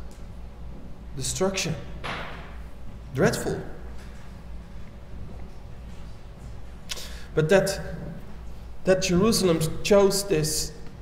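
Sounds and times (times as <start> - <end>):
steady low hum: 0.0 - 11.0
quick breath: 6.9 - 7.4.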